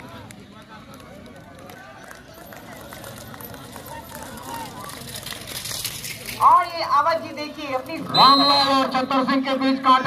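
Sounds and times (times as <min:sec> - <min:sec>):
distant people talking: 0:00.0 - 0:09.0
outdoor background noise: 0:00.0 - 0:10.0.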